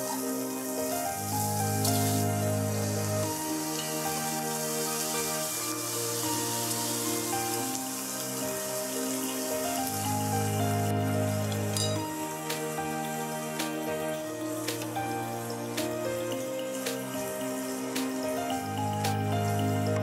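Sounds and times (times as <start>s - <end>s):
paste sizzling in a pan: 0.0s - 20.0s.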